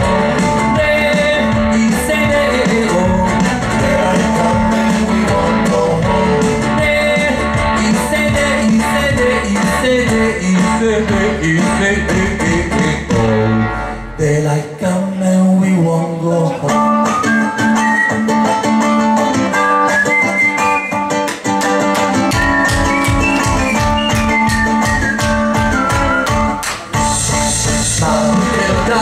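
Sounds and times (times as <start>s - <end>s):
melodic guitar lead line: 0.0s - 14.4s, 16.1s - 29.0s
deep bass: 0.0s - 14.6s, 24.8s - 29.0s
acoustic guitars strumming: 0.0s - 29.0s.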